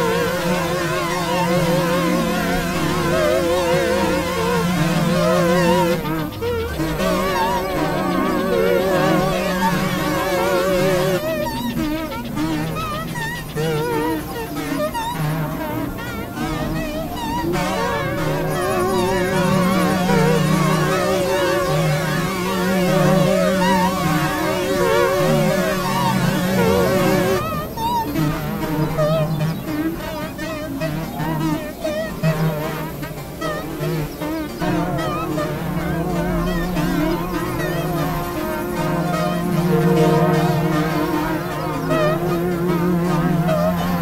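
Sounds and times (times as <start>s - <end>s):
warbling synthesizer music: 0.0s - 44.0s.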